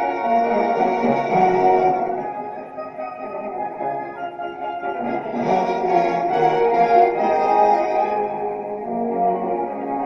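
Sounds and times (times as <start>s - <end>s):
orchestral music with strings and brass: 0.0s - 10.0s.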